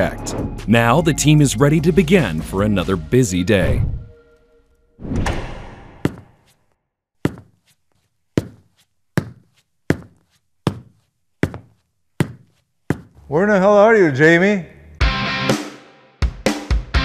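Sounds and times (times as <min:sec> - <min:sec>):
loud hit: 0:05.0 - 0:06.4
footsteps on concrete floor: 0:05.8 - 0:13.3.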